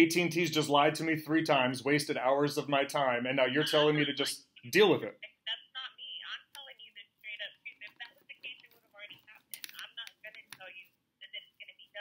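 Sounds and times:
woman talking through phone earpiece: 5.2 - 12.0.

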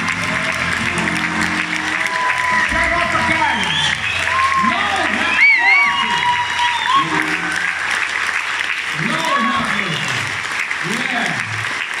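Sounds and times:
audience applauding: 0.0 - 12.0.

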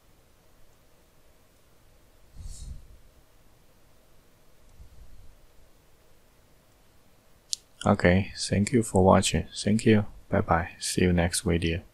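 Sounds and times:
person speaking: 7.8 - 11.9.

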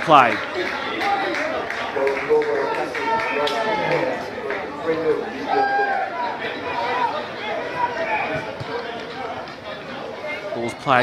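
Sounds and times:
people calling out and talking: 0.0 - 11.0.

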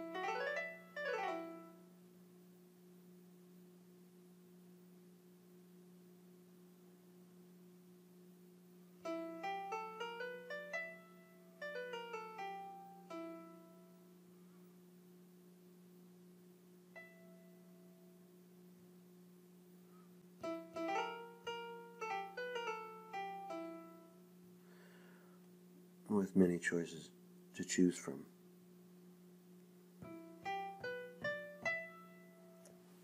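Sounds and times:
piano glissando runs: 0.0 - 1.9, 9.0 - 14.0, 17.0 - 18.1, 20.4 - 24.2
faint hum: 0.0 - 33.0.

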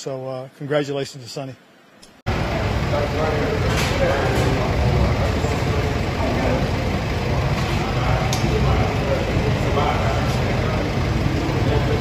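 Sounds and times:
people talking: 0.0 - 1.6, 2.3 - 12.0
van engine idling: 2.3 - 12.0.

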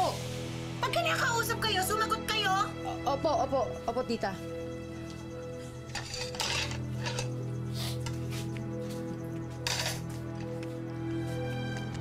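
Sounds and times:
background music: 0.0 - 12.0
dishes and cutlery clinking: 5.9 - 8.2, 9.5 - 10.6.

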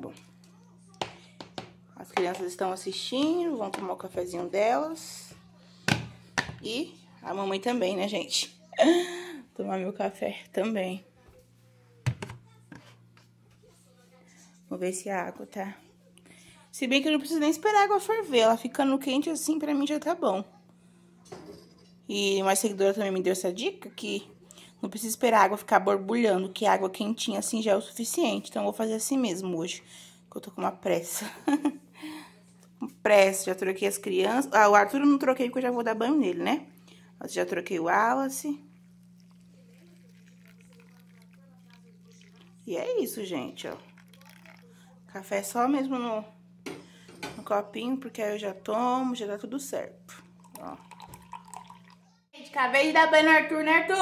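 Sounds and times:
plastic cup knocking: 1.0 - 2.4, 12.0 - 12.8
steady low hum: 27.1 - 52.4
water trickling onto coffee: 38.6 - 45.5, 50.2 - 52.0.

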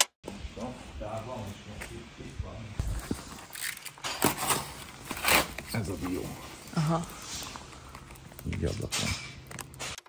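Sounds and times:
rustling and scraping: 2.8 - 10.0.

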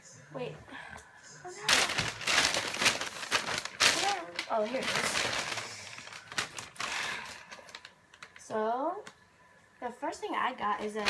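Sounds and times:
plastic bag rustling: 1.6 - 8.6.

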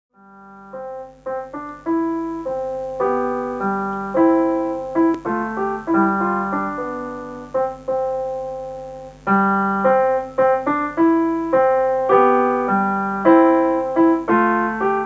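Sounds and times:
calm piano piece: 0.2 - 15.0.

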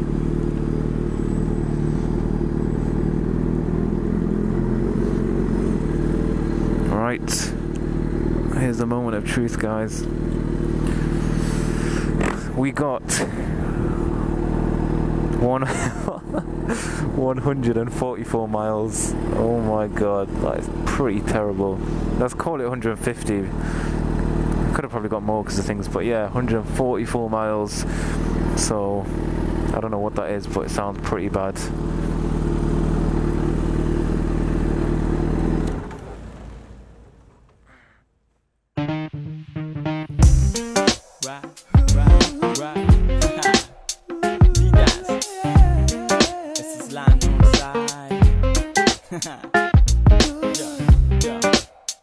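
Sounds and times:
motorcycle engine idling: 0.0 - 37.7, 40.2 - 49.2
upbeat music: 38.8 - 52.0.

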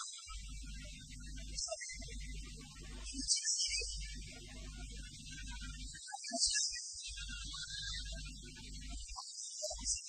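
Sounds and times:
low electrical hum: 0.3 - 3.2, 3.8 - 6.0, 7.1 - 9.1.

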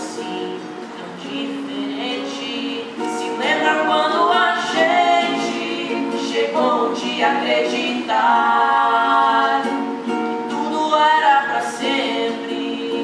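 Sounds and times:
acoustic guitar: 0.0 - 13.0
man and woman singing duet: 0.0 - 13.0.

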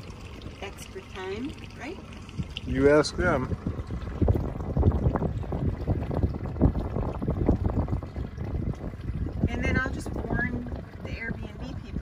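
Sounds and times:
water noise: 0.0 - 12.0
wind buffeting microphone: 0.0 - 12.0.

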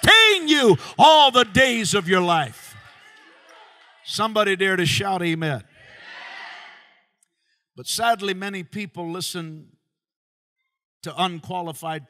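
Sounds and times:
man speaking: 0.0 - 2.7, 4.1 - 5.6, 7.8 - 9.6, 11.0 - 12.0.

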